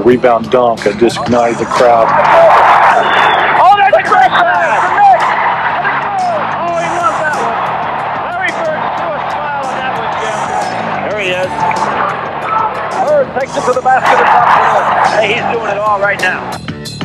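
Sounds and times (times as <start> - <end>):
arena crowd noise: 0.0 - 16.6.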